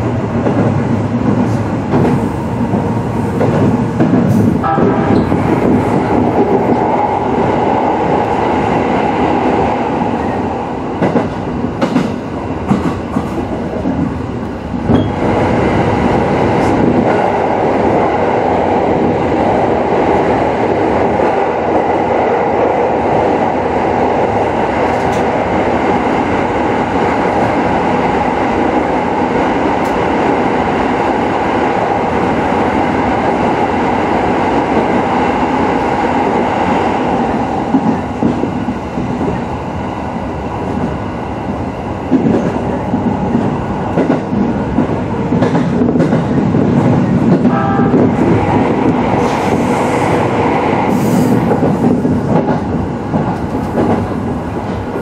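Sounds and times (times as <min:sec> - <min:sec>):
train wheels rumbling on track: 0:00.0 - 0:55.0.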